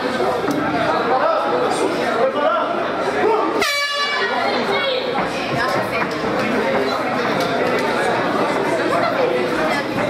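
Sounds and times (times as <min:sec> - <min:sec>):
crowd chatter: 0:00.0 - 0:10.0
air horn: 0:03.6 - 0:04.3.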